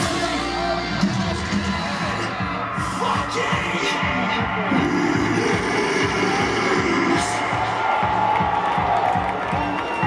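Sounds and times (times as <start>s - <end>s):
heavy distorted guitars: 0.0s - 9.7s.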